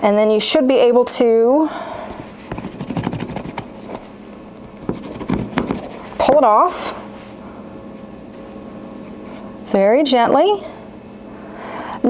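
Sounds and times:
rolling pin knocking and scraping: 0:02.5 - 0:04.0, 0:04.8 - 0:06.4.

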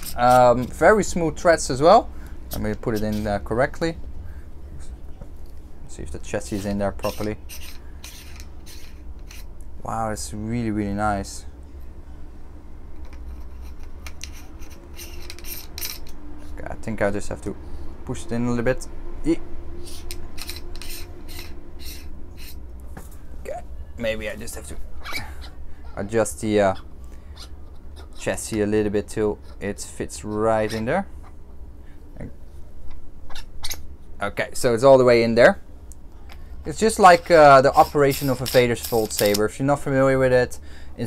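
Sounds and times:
faint rubbing: 0:00.0 - 0:00.9, 0:06.3 - 0:09.5, 0:19.8 - 0:23.3, 0:36.8 - 0:39.4.

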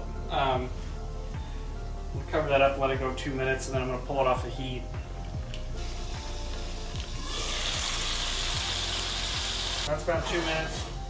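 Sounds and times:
background music beat: 0:00.0 - 0:11.0
fish sizzling in a pan: 0:05.8 - 0:10.4.

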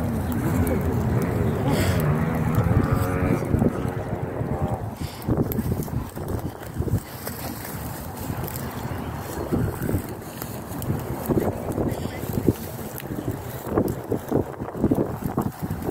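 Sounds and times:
wind buffeting microphone: 0:00.0 - 0:15.9.

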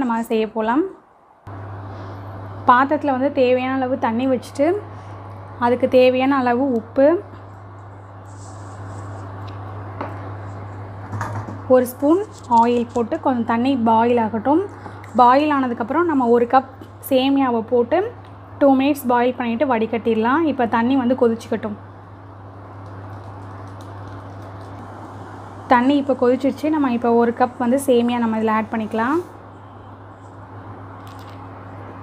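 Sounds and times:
electrical hum and fan noise: 0:00.0 - 0:32.0.

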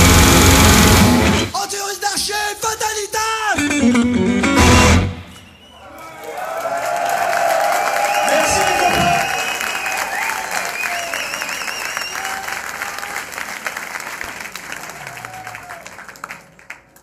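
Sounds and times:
wavering whistle: 0:05.3 - 0:05.9, 0:08.0 - 0:12.4
audience applauding: 0:05.4 - 0:17.0.

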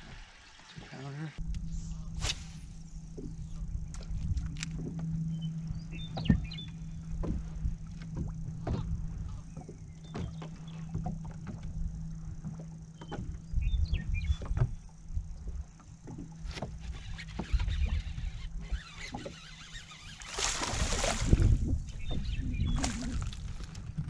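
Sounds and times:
water splashing against boat hull: 0:14.2 - 0:24.0
electric motor humming: 0:16.3 - 0:23.8.

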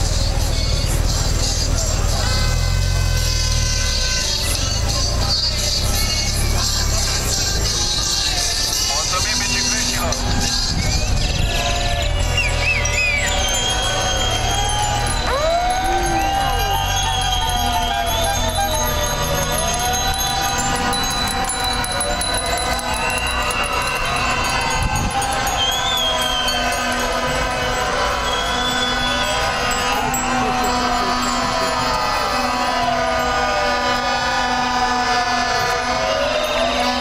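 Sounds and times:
sirens wailing: 0:00.0 - 0:37.0
street and crowd noise: 0:00.0 - 0:37.0.

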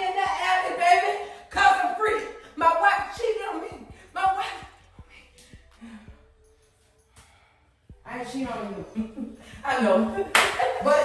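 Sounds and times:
hand claps: 0:10.3 - 0:10.6.

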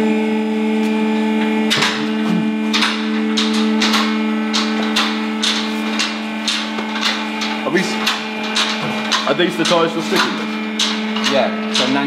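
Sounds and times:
hydraulic pump motor humming: 0:00.0 - 0:12.0.

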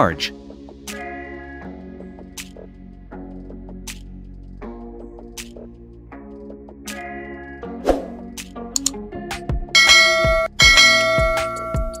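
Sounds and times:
background music with low beat: 0:00.0 - 0:07.0, 0:08.0 - 0:12.0
ringing bell-like chimes: 0:09.8 - 0:12.0.

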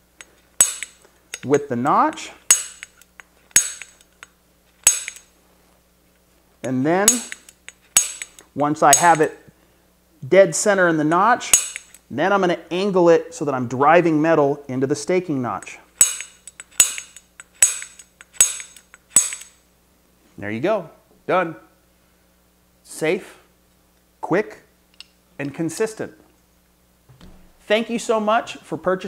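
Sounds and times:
center punch metallic snap: 0:00.2 - 0:01.5, 0:02.1 - 0:04.2, 0:04.8 - 0:05.3, 0:07.0 - 0:09.3, 0:11.5 - 0:12.0, 0:16.0 - 0:19.6.

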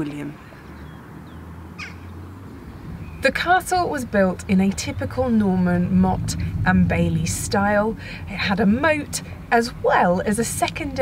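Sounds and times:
low outdoor rumble: 0:00.0 - 0:11.0
harsh bird call: 0:00.5 - 0:02.2.

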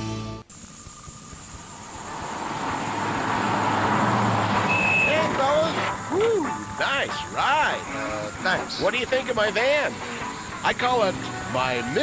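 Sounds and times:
music: 0:00.0 - 0:00.5, 0:05.5 - 0:12.0
vehicle engine and road noise: 0:00.4 - 0:12.0
short high beep: 0:04.7 - 0:05.3.

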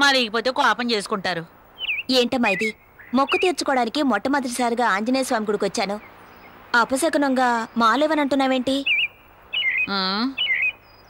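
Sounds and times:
small bird chirping: 0:01.7 - 0:04.0, 0:05.8 - 0:11.0.

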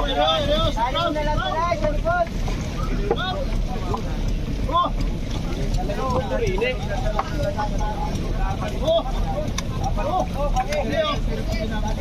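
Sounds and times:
sea: 0:00.0 - 0:12.0
wind: 0:00.0 - 0:12.0.

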